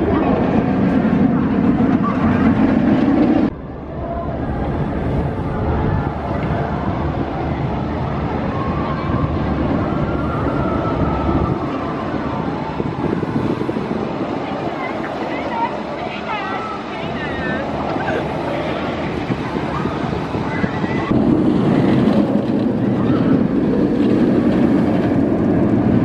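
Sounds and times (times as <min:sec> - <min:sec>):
people's voices: 0:00.0 - 0:26.0
roller coaster rumbling on track: 0:00.0 - 0:26.0.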